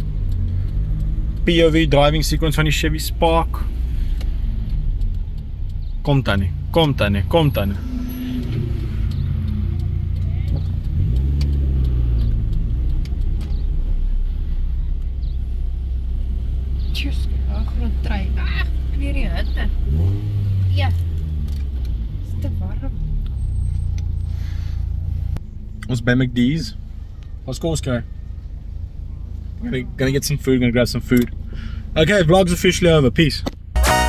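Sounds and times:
car engine drone from inside: 0.0s - 34.0s
people talking: 1.4s - 3.7s, 6.1s - 7.8s, 10.2s - 10.6s, 17.0s - 19.7s, 20.7s - 21.0s, 22.3s - 22.9s, 25.8s - 26.8s, 29.6s - 31.3s, 32.0s - 33.5s.

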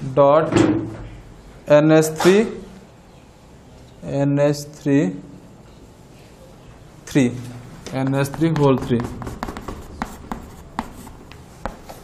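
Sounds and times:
chalk tapping on board: 7.8s - 12.0s
chalk scratching on chalkboard: 7.9s - 12.0s.

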